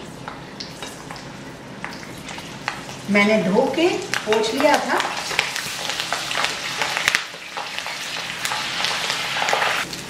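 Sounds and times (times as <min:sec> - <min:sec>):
chillies sizzling in hot oil: 0:00.2 - 0:10.0.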